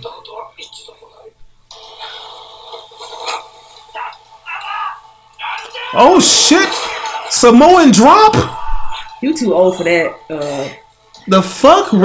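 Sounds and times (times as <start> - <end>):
voices speaking dialogue: 3.9 - 12.0.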